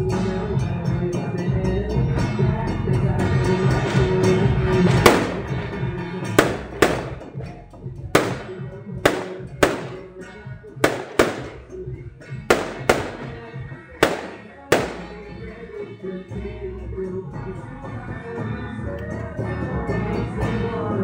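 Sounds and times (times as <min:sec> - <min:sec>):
music: 0:00.0 - 0:21.0
firecrackers banging: 0:04.9 - 0:07.5, 0:08.2 - 0:10.1, 0:10.8 - 0:11.7, 0:12.5 - 0:15.4.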